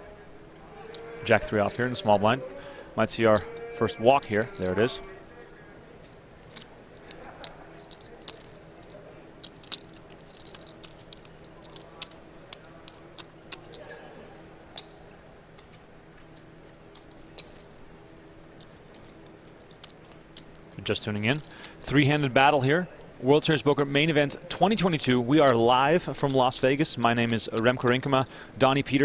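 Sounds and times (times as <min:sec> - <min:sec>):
poker chips clicking: 0:04.4 - 0:05.0, 0:06.5 - 0:13.9, 0:16.9 - 0:21.9, 0:24.7 - 0:29.0.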